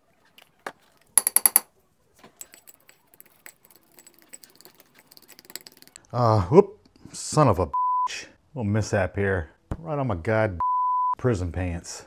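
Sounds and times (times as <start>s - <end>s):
utensil scraping: 2.2s - 6.0s
metal utensil clinking on ceramic: 2.4s - 6.0s.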